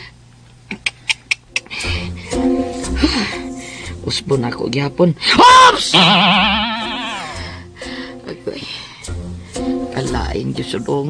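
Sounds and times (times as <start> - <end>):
breathy hissing sound: 1.7 - 4.0, 7.0 - 9.9.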